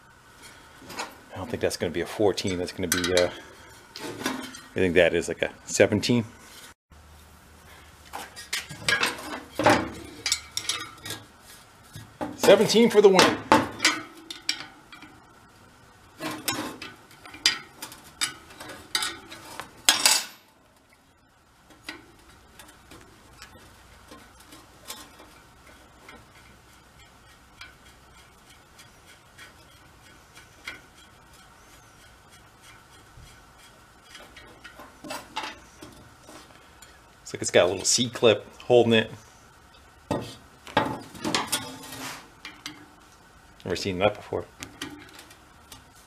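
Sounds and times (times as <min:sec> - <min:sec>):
wrench clinking on metal parts: 0:08.4 - 0:11.2, 0:16.2 - 0:20.5.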